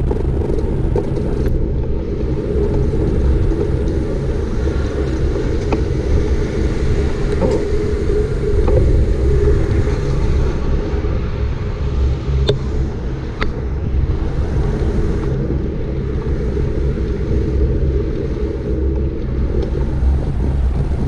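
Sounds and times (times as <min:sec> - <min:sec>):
bicycle road noise on asphalt: 0:00.0 - 0:21.0
wind buffeting microphone: 0:00.0 - 0:21.0.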